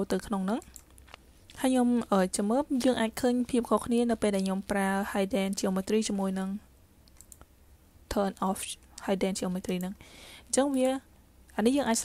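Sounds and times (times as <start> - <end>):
person speaking: 0.0 - 6.7, 8.1 - 12.0
computer mouse clicks: 0.6 - 1.2, 7.0 - 7.5.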